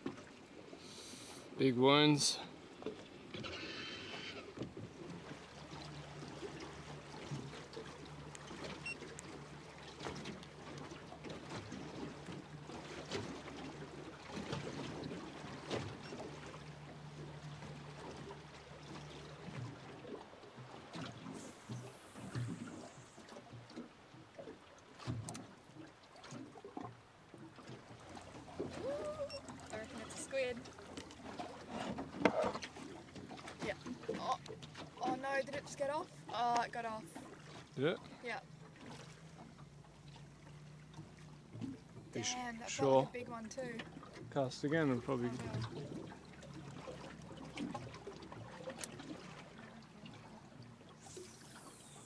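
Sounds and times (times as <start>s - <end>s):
water lapping against boat hull: 0.0s - 52.0s
small ticks and knocks: 23.6s - 25.5s.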